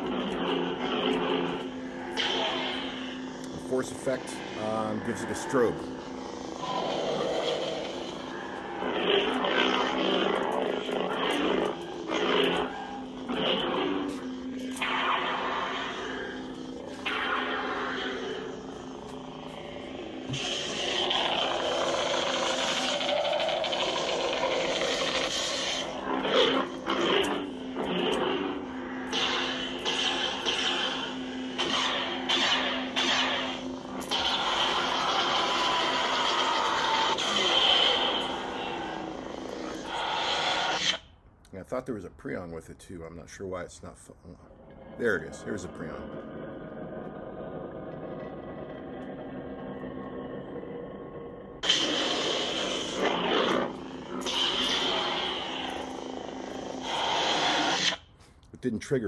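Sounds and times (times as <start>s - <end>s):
lightsaber swing sounds: 0.0s - 20.9s, 23.7s - 41.0s
lightsaber hits: 0.0s - 40.9s, 51.6s - 58.0s
lightsaber hum: 0.0s - 41.2s, 43.2s - 58.2s.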